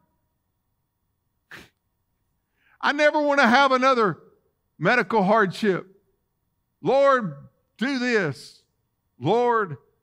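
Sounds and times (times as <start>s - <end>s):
man's sharp breath: 1.5s - 1.8s.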